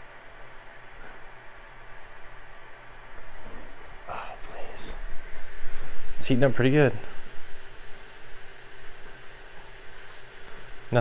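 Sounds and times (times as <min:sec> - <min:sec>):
cooling fans humming: 0:00.0 - 0:11.0.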